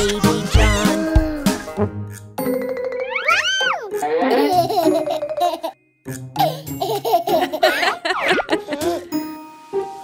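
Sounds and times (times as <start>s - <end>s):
cartoon baby giggling: 0.0s - 1.6s, 3.1s - 5.8s, 6.4s - 9.1s
children's background music: 0.0s - 10.0s.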